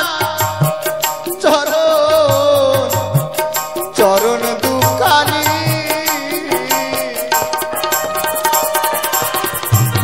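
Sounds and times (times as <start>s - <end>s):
folk melody with sliding notes: 0.7s - 10.0s.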